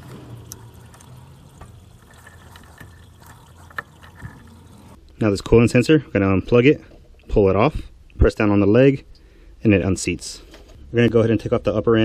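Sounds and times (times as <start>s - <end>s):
coolant trickling into rag: 0.0s - 5.0s.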